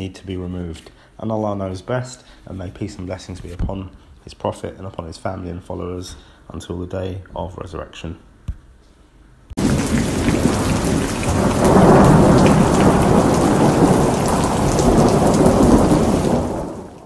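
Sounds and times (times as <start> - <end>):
heavy rain: 9.6 - 17.0
rolling thunder rumble: 9.6 - 17.0.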